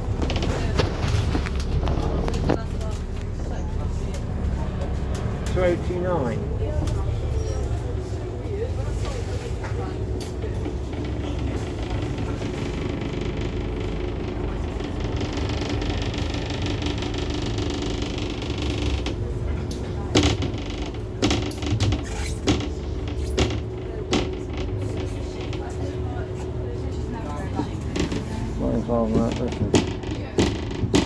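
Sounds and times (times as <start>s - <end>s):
bus diesel engine rumbling: 0.0s - 31.0s
knocks and rattles: 10.3s - 19.2s, 29.1s - 31.0s.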